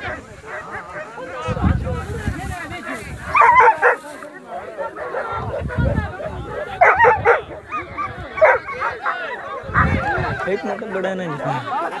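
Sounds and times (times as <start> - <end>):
dogs barking and yipping: 0.0 - 1.5, 3.3 - 10.5.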